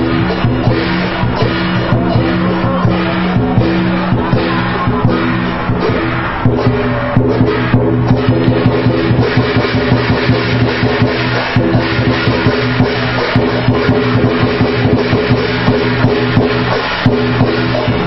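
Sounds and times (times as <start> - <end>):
large drum beaten fast: 0.0 - 18.0.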